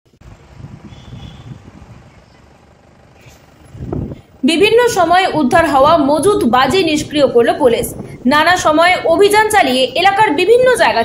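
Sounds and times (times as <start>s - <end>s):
wind buffeting microphone: 0.2s - 2.4s, 3.5s - 11.0s.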